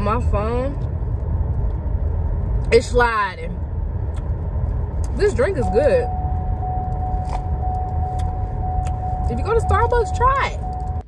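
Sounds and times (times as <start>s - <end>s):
low rumble inside car: 0.0s - 11.0s.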